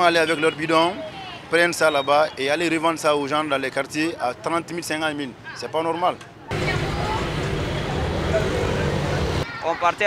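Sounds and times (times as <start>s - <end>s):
street traffic noise: 0.0s - 10.0s
motorcycle engines running: 6.5s - 9.4s.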